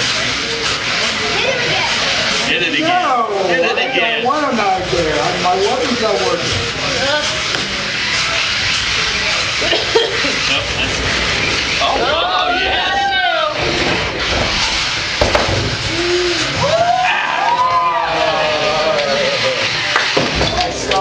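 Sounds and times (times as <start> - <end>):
crowd voices: 0.0 - 21.0
robot electric motors whining: 0.0 - 21.0.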